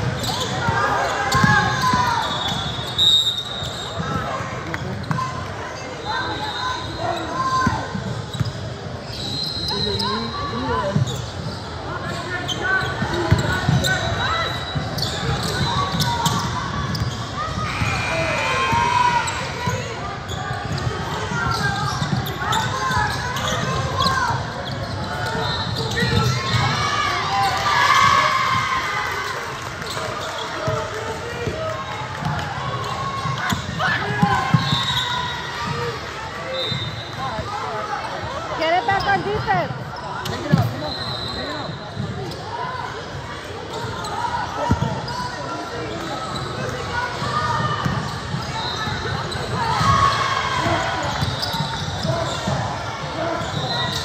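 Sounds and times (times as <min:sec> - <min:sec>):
sneakers squeaking: 0:00.0 - 0:54.0.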